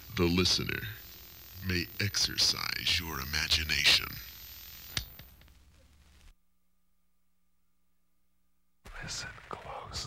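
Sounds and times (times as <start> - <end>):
spoken narration: 0.1 - 1.0, 1.6 - 4.3
sharp click: 4.9 - 5.4.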